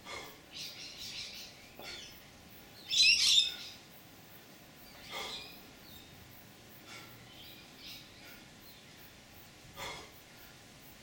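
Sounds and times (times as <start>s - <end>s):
bird chirping: 0.5s - 2.2s, 2.8s - 3.9s, 4.8s - 6.2s, 7.3s - 9.0s.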